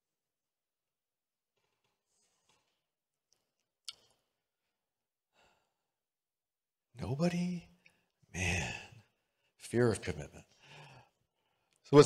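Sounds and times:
faint breath into microphone: 10.6s - 11.7s.

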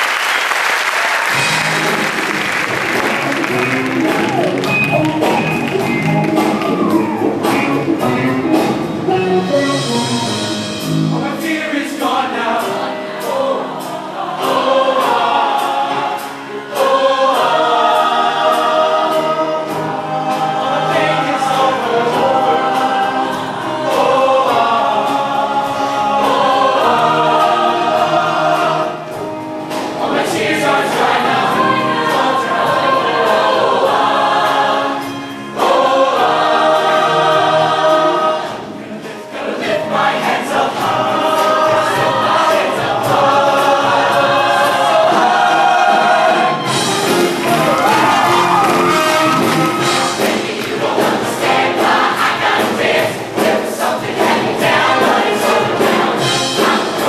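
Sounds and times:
choir singing in harmony: 0.0s - 57.0s
live band playing: 0.0s - 57.0s.

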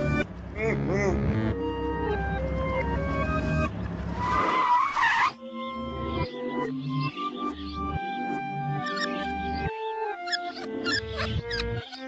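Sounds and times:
cartoon background music: 0.0s - 3.8s, 5.2s - 12.0s
screeching skid sound effect: 4.2s - 5.4s.

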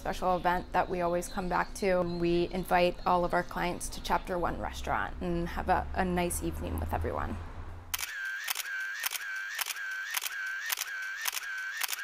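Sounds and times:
camera shutter clicking with motor: 8.0s - 12.0s.

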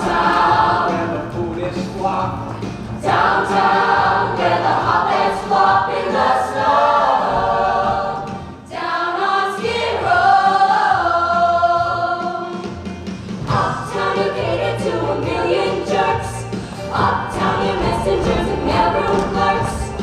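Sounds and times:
chorus singing: 0.0s - 20.0s.

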